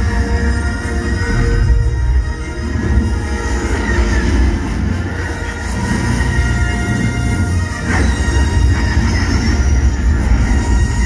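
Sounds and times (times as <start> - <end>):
dark dramatic music over loudspeakers: 0.0 - 11.0.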